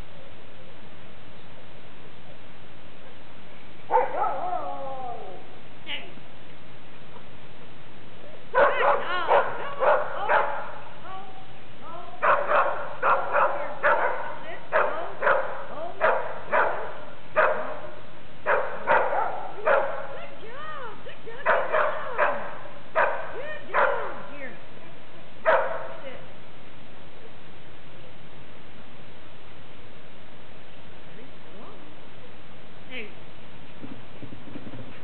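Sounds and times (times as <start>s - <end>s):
dog barking in high yips: 8.6s - 10.7s, 12.2s - 17.8s, 18.5s - 20.2s, 21.4s - 24.2s, 25.5s - 25.9s.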